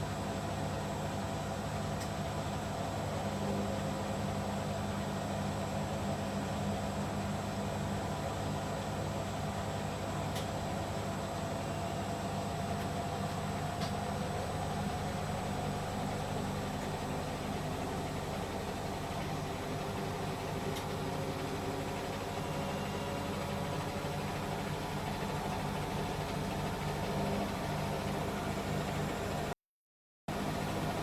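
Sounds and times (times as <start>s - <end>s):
washing machines spinning: 0.0s - 29.6s, 30.3s - 31.0s.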